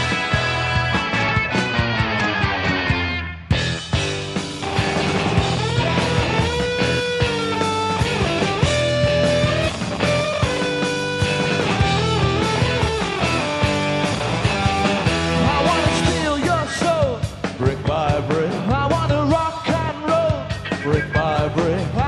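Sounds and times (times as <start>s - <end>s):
lead guitar notes bending: 0.0s - 15.7s
rock band playing: 0.0s - 22.0s.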